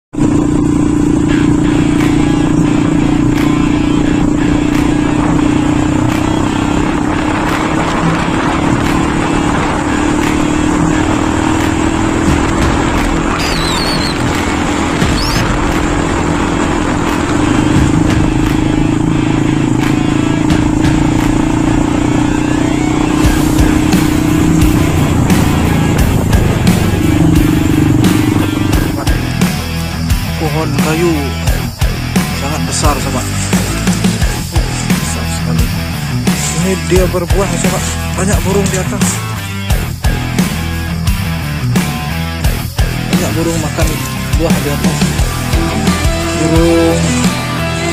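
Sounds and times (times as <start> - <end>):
motorcycle engine cruising: 0.0 - 47.9
road and wind noise: 0.0 - 47.9.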